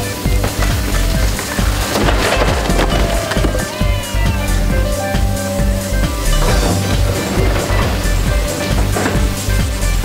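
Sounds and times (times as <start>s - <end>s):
brick wall cracking and crashing: 0.0s - 10.0s
low rumble of machinery: 0.0s - 10.0s.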